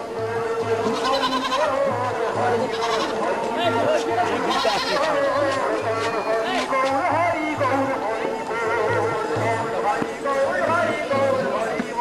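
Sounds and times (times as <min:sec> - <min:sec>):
drum beating: 0:00.0 - 0:12.0
voices singing devotional song: 0:00.0 - 0:12.0.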